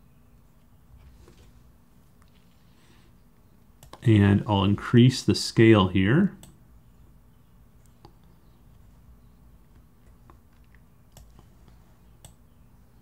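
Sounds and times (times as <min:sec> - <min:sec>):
low room hum: 0:00.0 - 0:13.0
computer mouse clicks: 0:03.8 - 0:04.0, 0:09.7 - 0:12.4.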